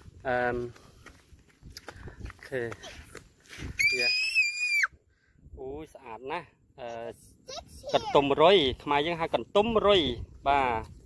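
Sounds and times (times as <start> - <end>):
child squealing: 3.8 - 5.0.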